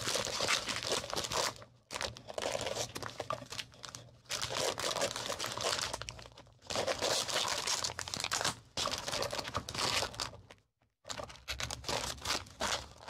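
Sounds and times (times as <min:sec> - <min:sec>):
plastic sleeves and paper rustling: 0:00.0 - 0:13.0.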